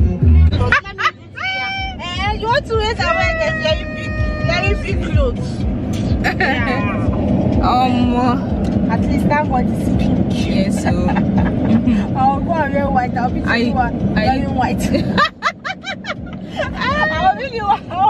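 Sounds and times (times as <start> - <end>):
car engine and road rumble: 0.0 - 18.0
women talking and exclaiming: 0.0 - 18.0.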